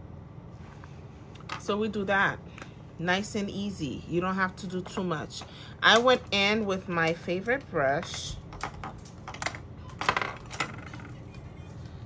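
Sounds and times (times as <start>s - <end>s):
makeup cases clicking and clattering: 8.0s - 11.1s.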